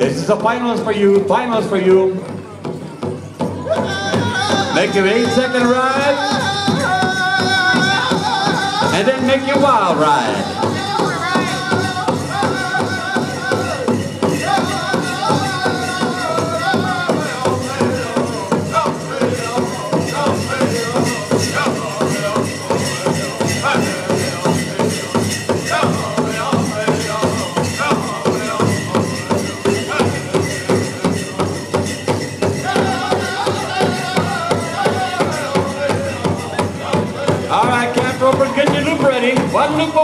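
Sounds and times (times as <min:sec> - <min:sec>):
large drum beating: 0:02.2 - 0:40.0
group singing: 0:03.7 - 0:38.9.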